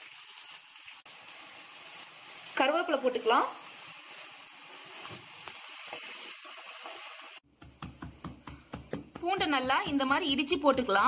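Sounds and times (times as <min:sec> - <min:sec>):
onions sizzling in hot oil: 0:00.0 - 0:07.9
garlic crushed on wooden board: 0:07.5 - 0:11.0.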